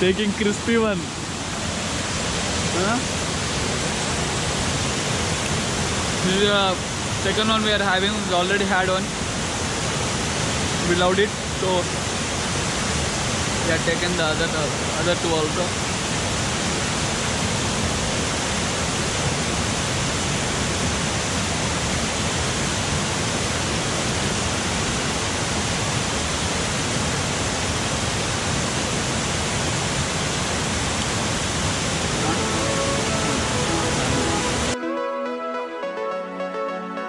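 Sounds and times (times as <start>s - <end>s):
waterfall rushing: 0.0s - 36.7s
faint music: 32.1s - 37.0s.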